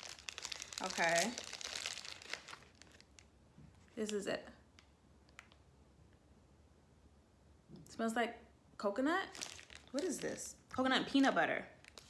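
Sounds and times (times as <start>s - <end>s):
snack wrapper crinkling: 0.0s - 3.3s, 9.3s - 10.4s, 11.8s - 12.0s.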